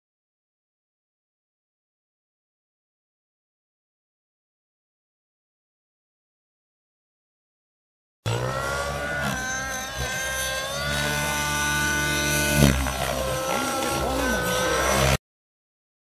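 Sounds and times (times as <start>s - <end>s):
rc helicopter motor whine: 8.3s - 15.2s.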